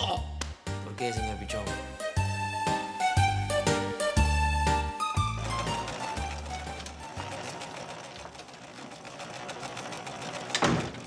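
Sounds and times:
background music: 0:00.0 - 0:08.4
sewing machine ticking: 0:04.2 - 0:11.0.

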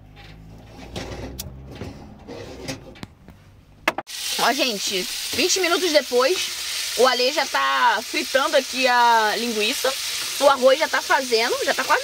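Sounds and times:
pot moved on stove grate: 0:00.0 - 0:03.2.

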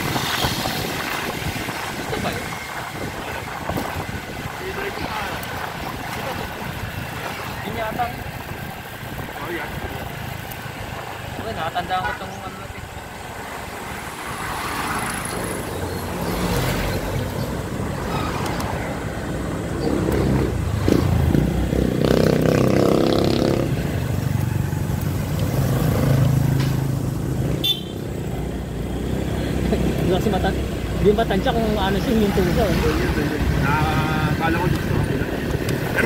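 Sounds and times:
road and wind noise: 0:00.0 - 0:36.0.

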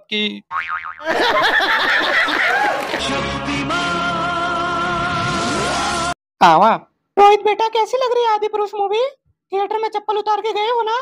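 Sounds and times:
cartoon boing: 0:00.5 - 0:01.1
people laughing loudly: 0:01.0 - 0:03.4.

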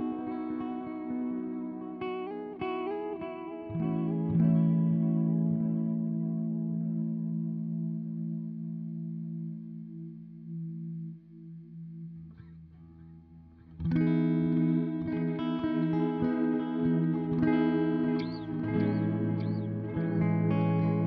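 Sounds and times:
guitar chord strummed loudly: 0:00.0 - 0:11.1, 0:13.8 - 0:21.0
electric guitar chord with tape delay: 0:13.8 - 0:21.0.

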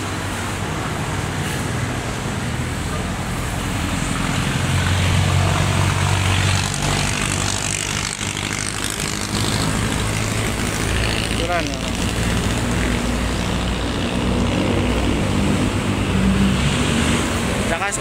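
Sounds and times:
traffic noise: 0:00.0 - 0:18.0
vehicle engine humming: 0:00.0 - 0:18.0.

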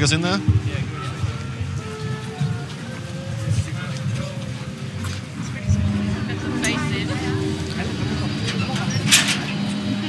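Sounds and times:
faint background voices: 0:00.0 - 0:10.0
steady low hum: 0:00.4 - 0:10.0.

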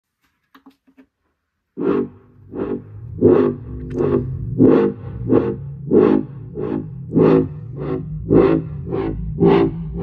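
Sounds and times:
loud music with heavy bass: 0:01.8 - 0:10.0.

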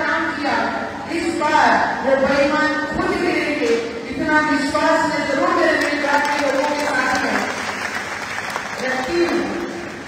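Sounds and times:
woman speaking into microphone: 0:00.0 - 0:07.6, 0:08.8 - 0:09.8
audience clapping: 0:05.8 - 0:10.0.

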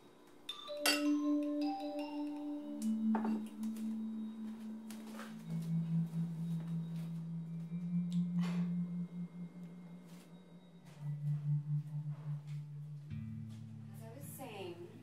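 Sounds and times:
low held background music: 0:00.0 - 0:15.0.

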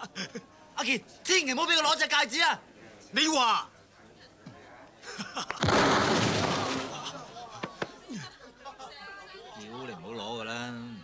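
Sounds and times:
smoke bomb burst: 0:05.6 - 0:07.2.

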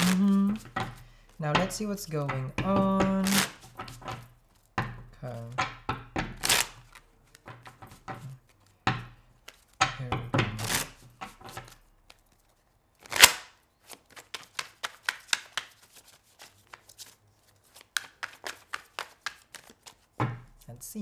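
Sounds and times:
cards being shuffled: 0:00.0 - 0:04.7, 0:06.3 - 0:08.8, 0:09.4 - 0:09.8, 0:10.4 - 0:20.7.

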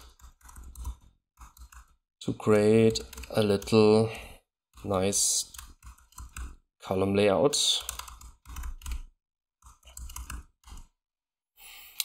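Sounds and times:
typing on computer keyboard: 0:00.0 - 0:04.0, 0:04.8 - 0:06.6, 0:07.6 - 0:10.9
soft breath: 0:11.6 - 0:12.0.

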